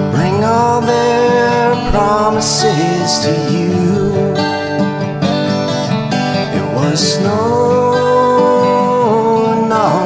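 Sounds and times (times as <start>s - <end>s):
acoustic guitars playing folk tune: 0.0s - 10.0s.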